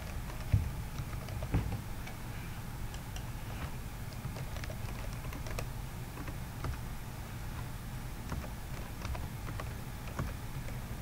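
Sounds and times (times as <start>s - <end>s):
typing on computer keyboard: 0.0s - 1.5s, 4.1s - 6.8s, 8.2s - 10.8s.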